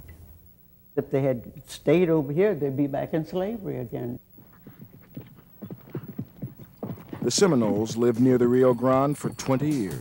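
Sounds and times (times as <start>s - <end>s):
horse hooves clip-clopping: 4.4s - 10.0s.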